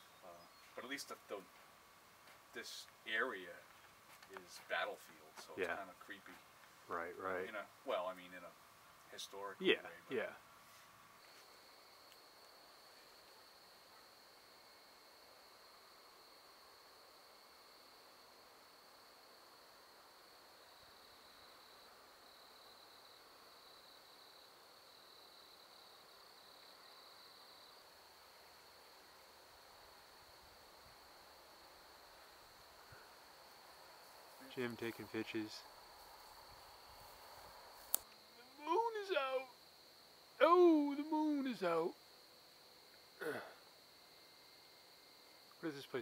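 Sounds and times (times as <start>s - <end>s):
high-pitched cricket trill: 11.1s - 46.0s.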